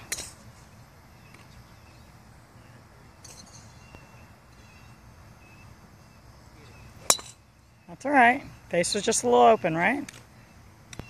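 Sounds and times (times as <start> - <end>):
faint bird chirps: 1.1 - 11.0.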